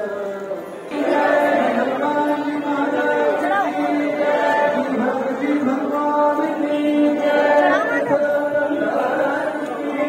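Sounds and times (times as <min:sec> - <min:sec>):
voices chanting a hymn: 0:00.0 - 0:10.0.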